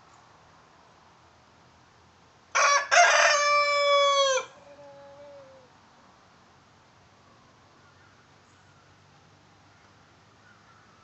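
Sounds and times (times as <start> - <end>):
rooster crowing: 2.6 - 5.7.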